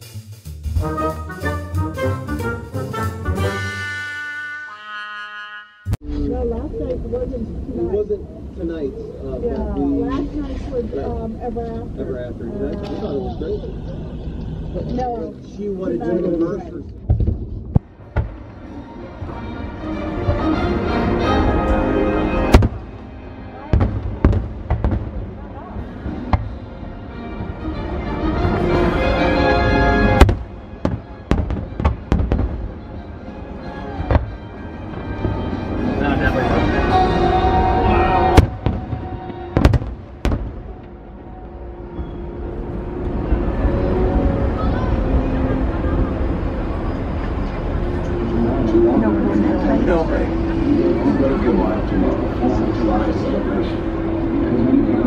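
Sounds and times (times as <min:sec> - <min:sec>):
low rumble: 0:05.9 - 0:55.0
people talking indistinctly: 0:06.0 - 0:40.8, 0:43.9 - 0:55.0
fireworks bursting: 0:22.5 - 0:26.8, 0:30.0 - 0:33.2, 0:34.0 - 0:35.5, 0:38.2 - 0:41.0.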